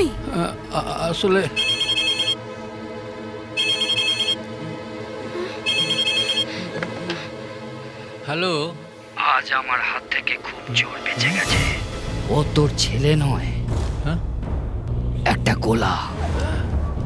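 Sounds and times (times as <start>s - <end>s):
mobile phone ringing: 1.6s - 2.4s, 3.6s - 4.5s, 5.7s - 6.5s.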